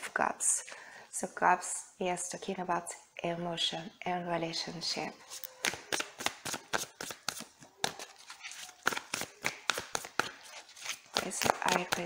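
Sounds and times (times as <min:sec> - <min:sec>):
cards being shuffled by hand: 0:05.3 - 0:12.0.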